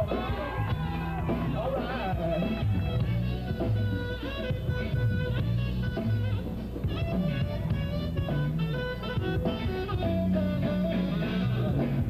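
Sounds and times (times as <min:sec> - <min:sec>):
moving bass line: 0:00.0 - 0:12.0.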